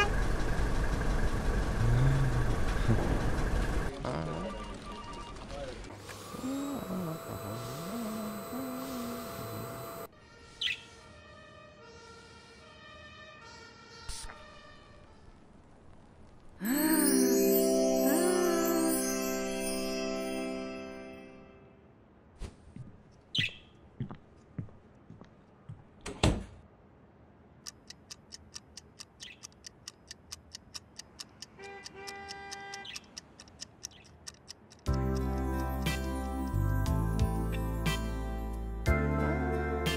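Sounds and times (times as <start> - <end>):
soft held notes changing pitch: 16.6 - 21.6
bird chirp: 23.3 - 23.8, 29.1 - 29.7, 32.7 - 33.2, 33.8 - 34.3
clock ticking rapidly: 27.7 - 35.5.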